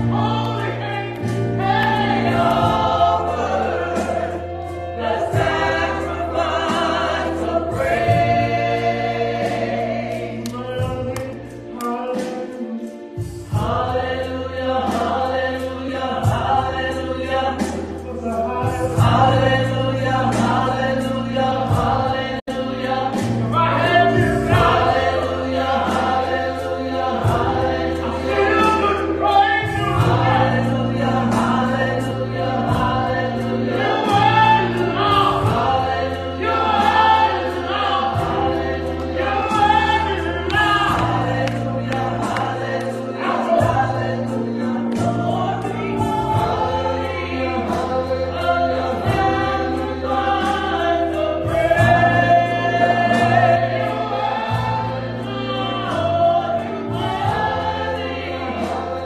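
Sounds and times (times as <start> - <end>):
gospel choir singing: 0.0 - 59.0
keyboard accompaniment: 0.0 - 59.0.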